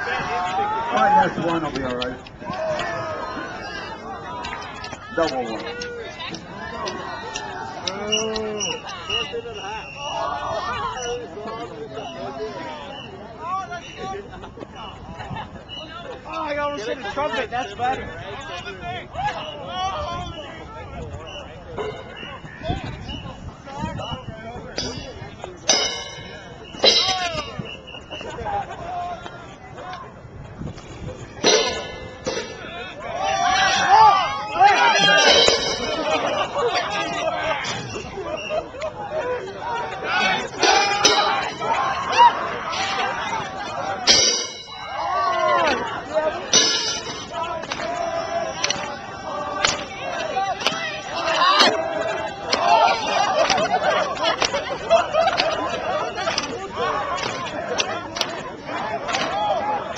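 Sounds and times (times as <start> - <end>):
crowd shouting and chattering: 0.0 - 59.9
cymbals wobbling on rims: 21.8 - 23.3, 24.7 - 28.3, 31.2 - 32.8, 34.8 - 38.2, 40.5 - 45.5, 46.4 - 47.5.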